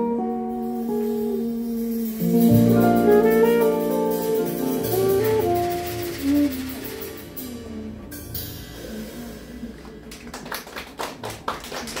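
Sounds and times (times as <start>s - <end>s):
audience clapping: 9.8s - 12.0s.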